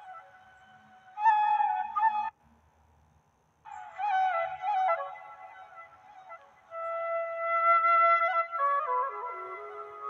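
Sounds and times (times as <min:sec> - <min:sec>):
gentle flute music: 0:00.0 - 0:02.4, 0:03.7 - 0:10.0.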